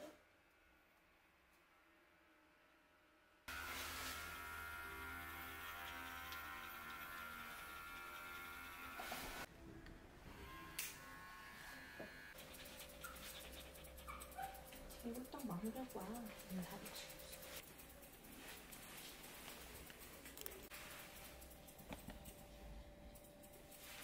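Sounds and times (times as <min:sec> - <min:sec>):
electric pet clipper running: 0:03.5 - 0:09.5, 0:10.3 - 0:17.6.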